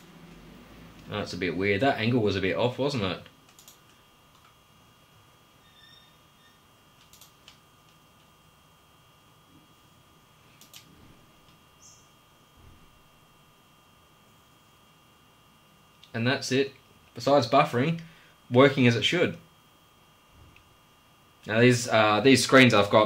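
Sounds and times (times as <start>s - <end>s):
small cooling fan whine: 0.0s - 23.0s
sharp clicks: 3.4s - 4.6s, 7.0s - 8.0s, 10.6s - 10.9s.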